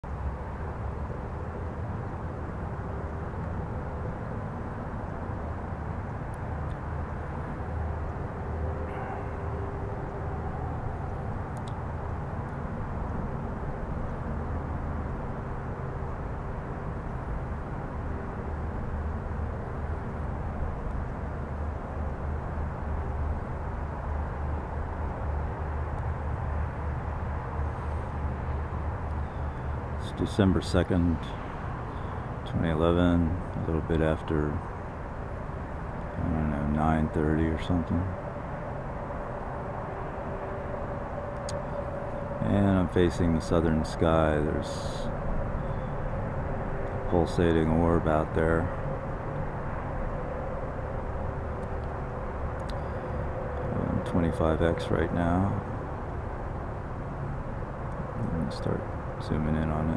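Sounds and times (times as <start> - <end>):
faint hum: 0.0 - 59.9
low outdoor rumble: 0.0 - 59.9.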